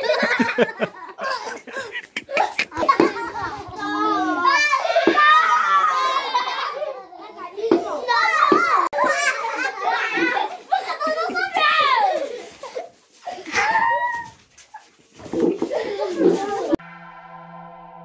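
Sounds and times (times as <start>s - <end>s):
children shouting and chattering: 0.0s - 16.8s.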